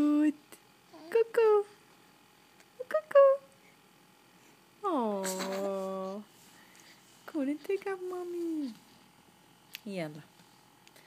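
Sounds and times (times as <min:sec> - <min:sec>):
baby cooing: 0:05.2 - 0:06.2.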